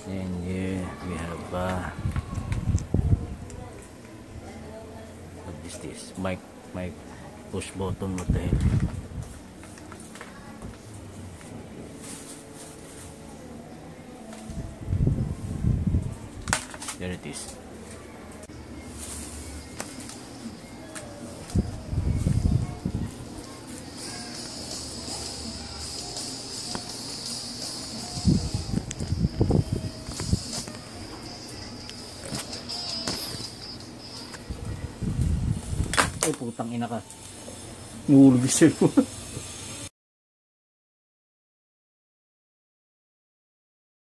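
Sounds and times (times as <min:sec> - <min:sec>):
music through headphone earcup: 0:18.4 - 0:35.9.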